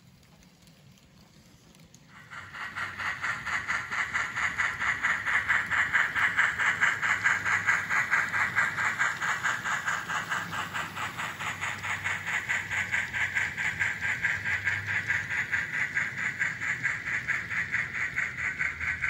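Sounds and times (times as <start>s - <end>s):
model steam locomotive chuffing: 0.0s - 19.0s.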